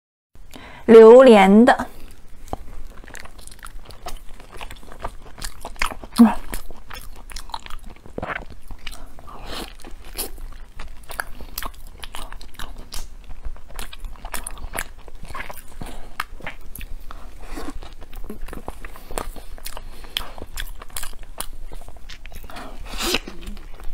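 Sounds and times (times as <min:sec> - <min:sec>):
biting and chewing soft food: 0:01.9 - 0:23.9.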